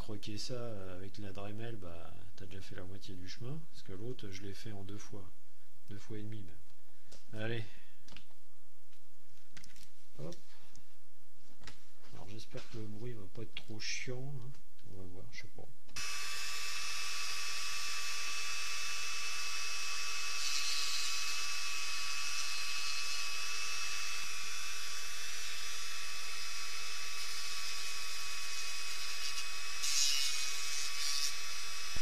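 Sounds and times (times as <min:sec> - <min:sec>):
rotary tool grinding: 0:16.0 - 0:32.0.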